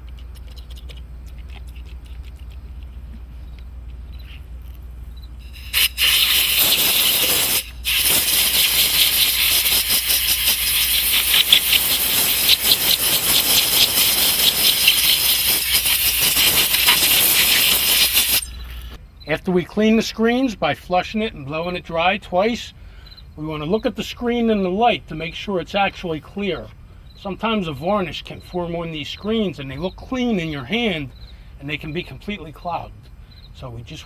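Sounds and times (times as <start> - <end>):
low steady hum: 0.0 - 17.5, 18.2 - 34.0
compressed air blow gun hissing: 5.4 - 19.0.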